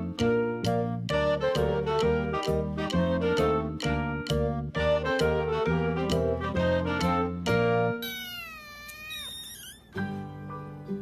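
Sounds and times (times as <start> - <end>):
background music: 0.0 - 8.0, 10.0 - 11.0
kitten meowing: 8.0 - 10.0.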